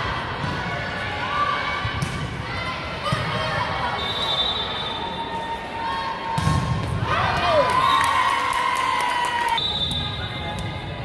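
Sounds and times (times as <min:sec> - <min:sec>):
spectators cheering and shouting: 0:04.9 - 0:09.6.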